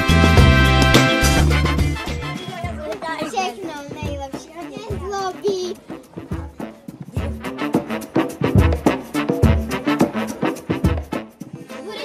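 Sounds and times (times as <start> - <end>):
background music with beat: 0.0 - 12.0
children talking: 2.0 - 7.9, 11.4 - 12.0.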